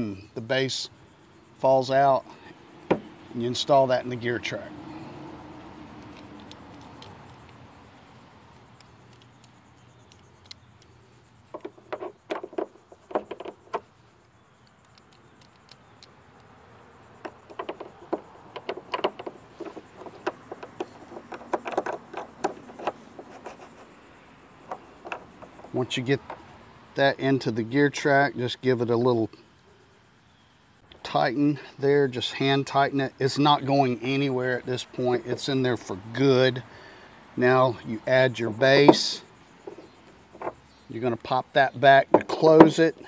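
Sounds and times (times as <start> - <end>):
plastic mount clicking and rattling: 11.5 - 13.9, 17.2 - 23.2, 24.7 - 26.5.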